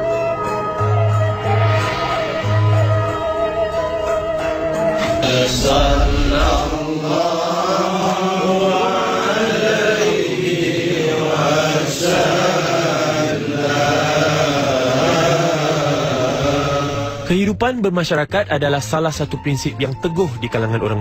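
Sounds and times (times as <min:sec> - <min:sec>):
voices chanting: 0:05.0 - 0:17.3.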